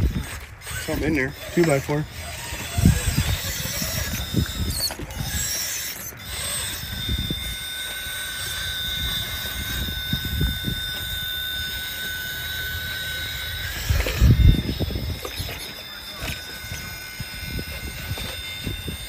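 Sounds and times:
electric motor whining: 0:00.0 - 0:19.0.

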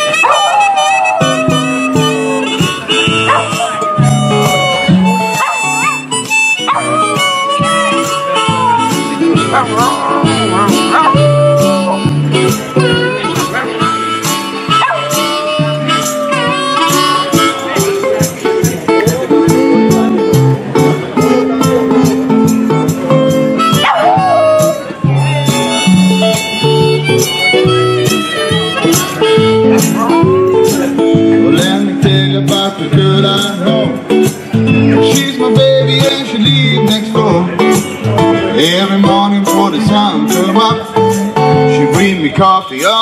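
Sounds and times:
dog howling: 0:00.0 - 0:12.2, 0:14.7 - 0:18.0, 0:23.8 - 0:24.9
box-drum beat: 0:00.0 - 0:42.5
acoustic guitar music: 0:00.0 - 0:43.0.

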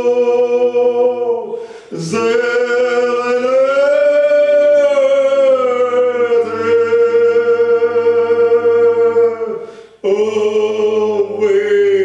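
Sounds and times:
men singing a cappella: 0:00.0 - 0:12.0.

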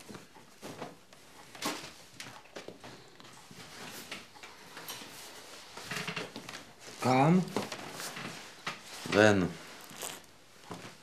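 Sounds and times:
objects being handled: 0:00.0 - 0:11.0.

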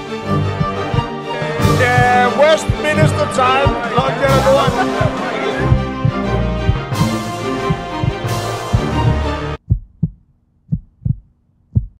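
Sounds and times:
music: 0:00.0 - 0:09.6
heartbeat thumps: 0:00.4 - 0:12.0.

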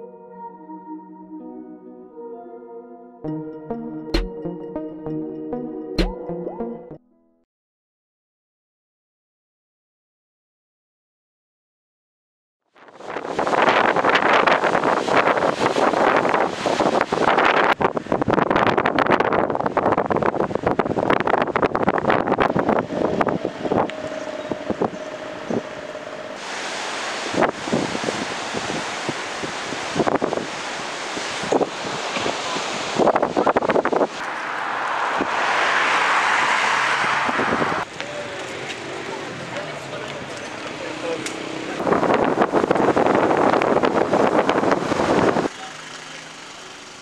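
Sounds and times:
wind buffeting microphone: 0:12.9 - 0:34.3, 0:37.1 - 0:45.5
sea waves breaking on shore: 0:13.0 - 0:18.2, 0:22.6 - 0:46.0.

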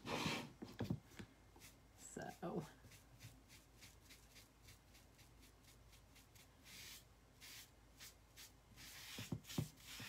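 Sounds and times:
foam brush swishing on wood: 0:01.6 - 0:10.0.

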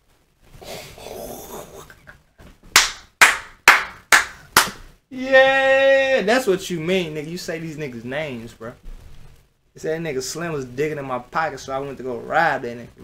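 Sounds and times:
hands clapping: 0:02.7 - 0:04.9
person exclaiming: 0:05.1 - 0:06.4.

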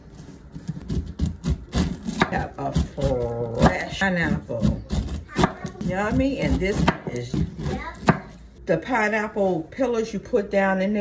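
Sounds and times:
knife cutting through pineapple rind: 0:00.0 - 0:08.3.

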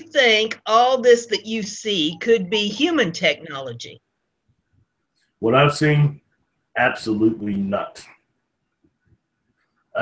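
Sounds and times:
man speaking: 0:05.4 - 0:06.2, 0:06.8 - 0:08.1.

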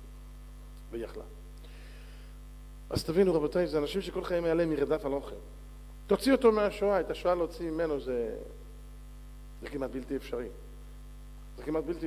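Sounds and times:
electrical mains hum: 0:00.0 - 0:12.0
man speaking: 0:00.9 - 0:01.4, 0:02.9 - 0:05.4, 0:11.6 - 0:12.0.

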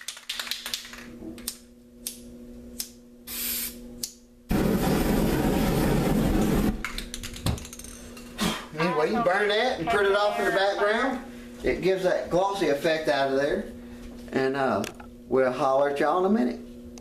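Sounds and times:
spray paint rushing through flame: 0:04.5 - 0:06.8.

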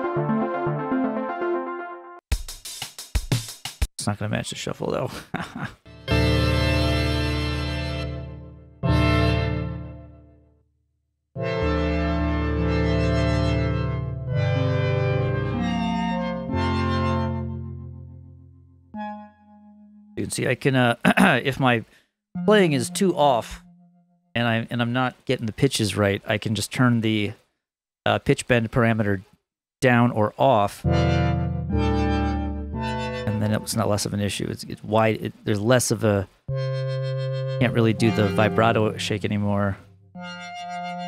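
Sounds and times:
synthesized organ chords: 0:00.0 - 0:02.2, 0:05.8 - 0:10.3, 0:11.4 - 0:20.4, 0:22.4 - 0:24.2, 0:30.8 - 0:34.2, 0:36.5 - 0:41.0.

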